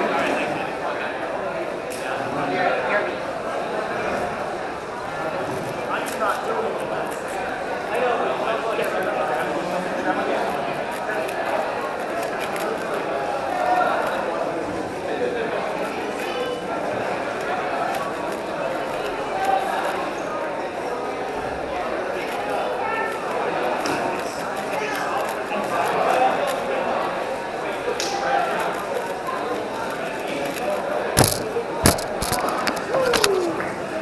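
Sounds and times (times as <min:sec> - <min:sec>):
chatter of many people: 0:00.0 - 0:34.0
sharp knocks: 0:31.2 - 0:32.9.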